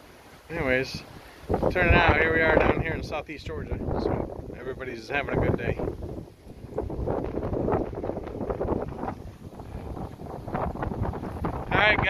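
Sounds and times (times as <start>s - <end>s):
wind blowing across microphone: 0.0s - 12.0s.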